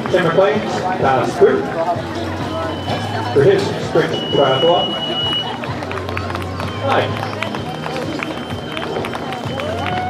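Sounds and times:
murmur of voices: 0.0 - 10.0
high electronic beep: 2.5 - 3.3, 4.0 - 5.5.

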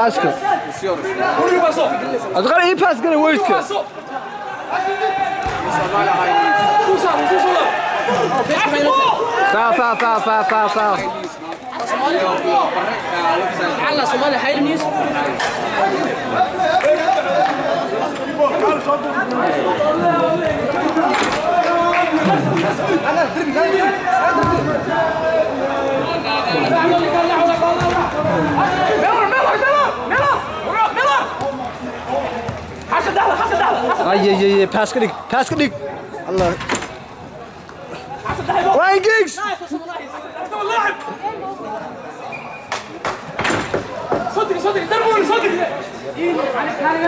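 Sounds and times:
babble of chatter: 0.0 - 47.0.

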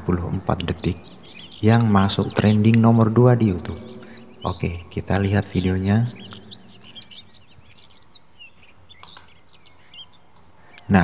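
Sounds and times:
small birds chirping: 0.0 - 11.0
faint clicks: 6.1 - 10.9.

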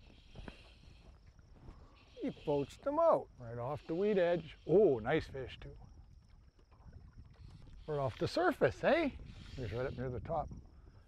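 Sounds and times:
small waves lapping around boat: 0.0 - 11.0
low wind rumble: 4.5 - 11.0.

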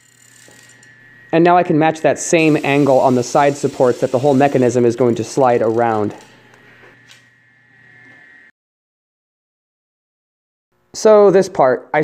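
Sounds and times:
faint steady hum: 0.0 - 8.5
thin high steady tone: 0.0 - 8.5
person speaking: 1.3 - 6.3.

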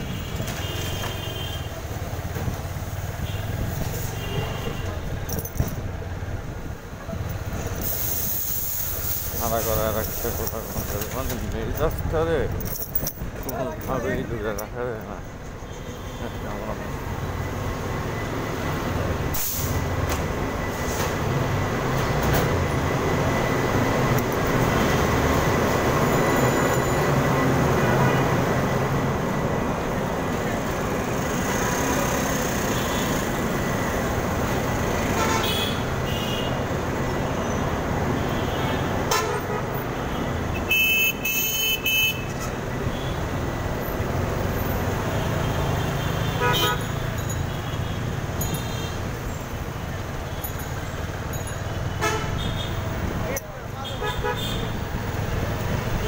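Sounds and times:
car horns honking: 0.0 - 1.8, 35.0 - 36.7, 38.1 - 43.3, 45.3 - 49.1, 51.8 - 52.9, 53.8 - 54.9
city traffic din: 0.0 - 56.0.

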